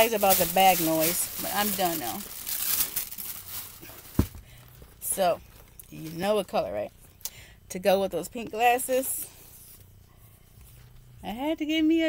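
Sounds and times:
plastic bag rustling: 0.0 - 6.8.

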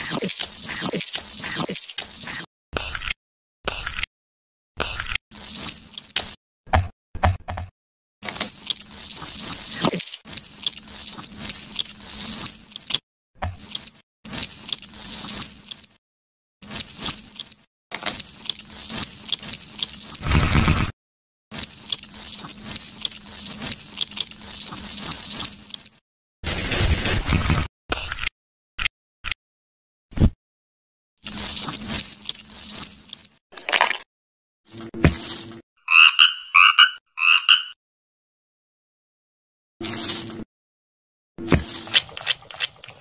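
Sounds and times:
frog croaking: 35.8 - 37.8.

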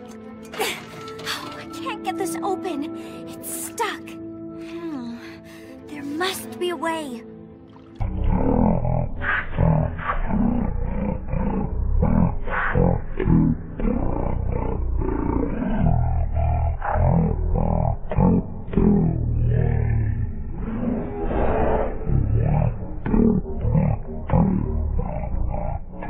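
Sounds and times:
distorted deep voice: 8.0 - 14.2, 22.1 - 26.0
heavy bass: 21.9 - 26.0.

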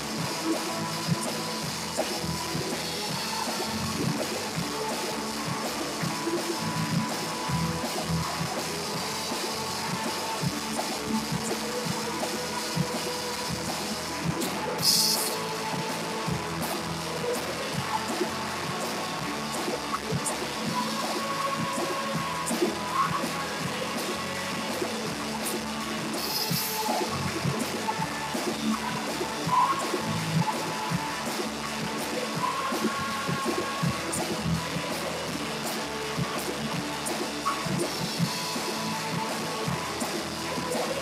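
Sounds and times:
worship band playing: 0.0 - 41.0.

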